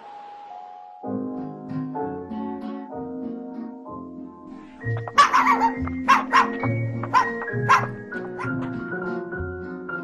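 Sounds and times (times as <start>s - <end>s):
background music: 0.0s - 10.0s
puppy yapping: 5.0s - 8.7s.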